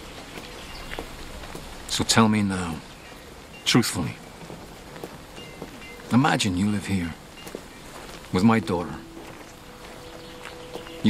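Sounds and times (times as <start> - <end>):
outdoor ambient hiss: 0.0 - 11.0.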